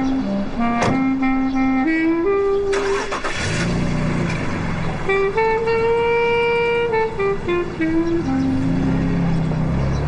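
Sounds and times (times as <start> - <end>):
light melodic music: 0.0 - 10.0
car engine starting: 2.1 - 10.0.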